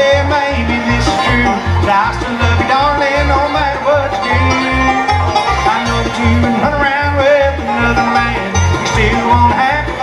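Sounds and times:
banjo rolls: 0.0 - 10.0
bass line: 0.0 - 10.0
fiddle melody: 0.0 - 10.0
guitar: 0.0 - 10.0.

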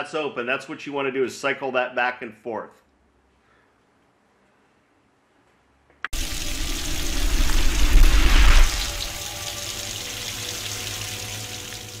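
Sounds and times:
deep rumble: 6.2 - 9.5
rushing water: 6.2 - 12.0.

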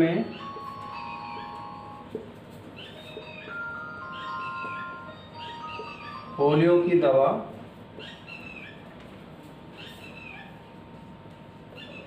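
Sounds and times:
marker squeaking on whiteboard: 2.7 - 6.1.

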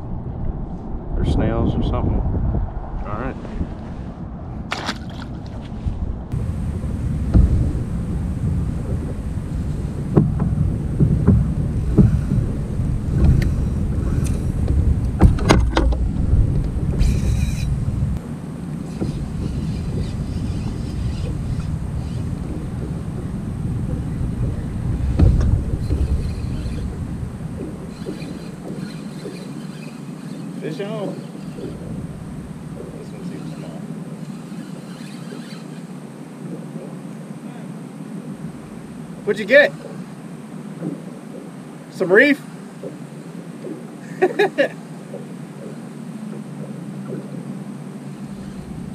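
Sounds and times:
wind buffeting microphone: 0.0 - 42.0, 42.6 - 48.9
sharp knocks: 7.2 - 7.7, 10.1 - 12.5, 18.9 - 30.2.

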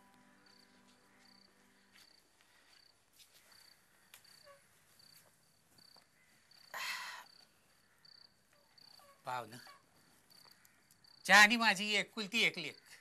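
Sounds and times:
cricket chirping: 0.0 - 13.0.

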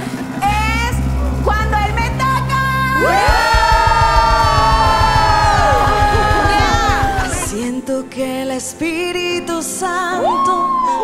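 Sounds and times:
quick steady low beat: 3.0 - 7.7.

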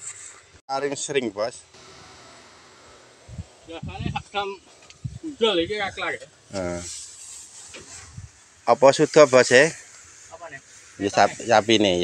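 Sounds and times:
low thuds: 3.1 - 6.8.

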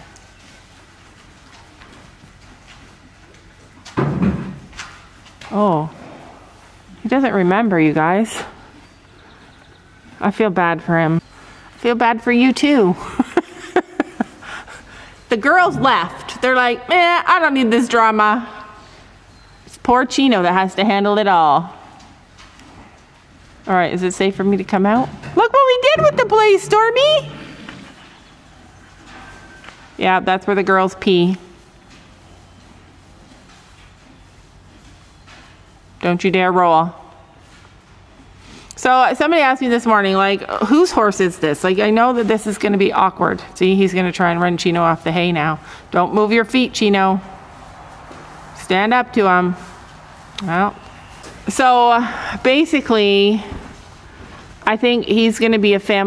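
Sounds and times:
horse hoofsteps on dirt: 0.0 - 7.6, 46.2 - 52.0
horse hooves on soft dirt: 0.0 - 56.0.

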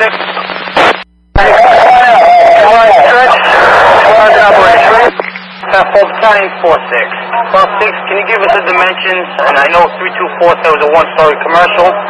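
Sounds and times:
garbled radio voice: 0.0 - 12.0
radio static: 0.0 - 12.0.

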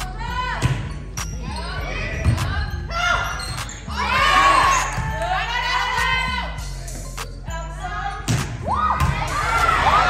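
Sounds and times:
crowd shouting and cheering: 0.0 - 7.2, 8.4 - 10.0.

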